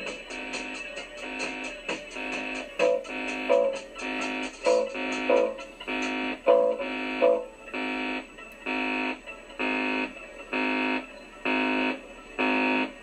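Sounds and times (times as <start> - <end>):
distorted electric guitar chord: 2.8 - 8.2.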